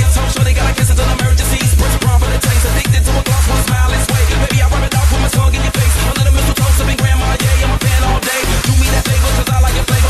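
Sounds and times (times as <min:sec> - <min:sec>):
electronic dance music: 0:00.0 - 0:10.0
four-on-the-floor kick drum: 0:00.0 - 0:10.0.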